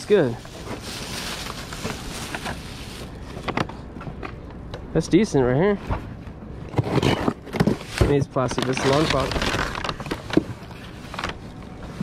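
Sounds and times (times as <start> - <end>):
plastic bag rustling: 0.0 - 3.6, 7.0 - 12.0
low outdoor hum: 0.0 - 12.0.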